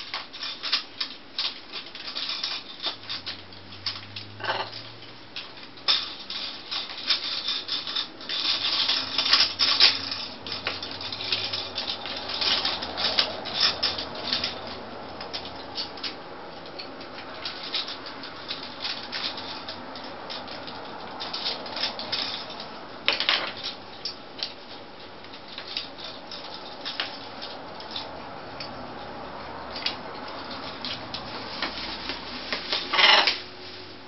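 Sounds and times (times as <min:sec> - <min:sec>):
plastic bracelets clicking and rattling: 0:00.0 - 0:29.1.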